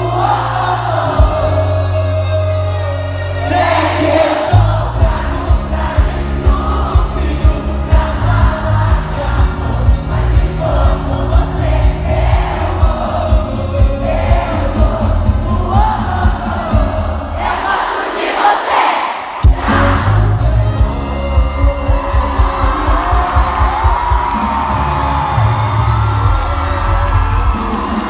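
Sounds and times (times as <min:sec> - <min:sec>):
person singing: 0:00.0 - 0:17.7, 0:19.4 - 0:28.0
live pop band playing: 0:00.0 - 0:17.8, 0:19.2 - 0:28.0
crowd cheering and singing: 0:00.0 - 0:28.0.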